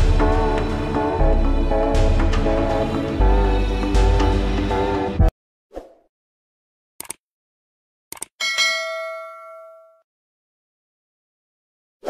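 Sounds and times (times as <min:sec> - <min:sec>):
bright bell ding: 0:08.4 - 0:10.0.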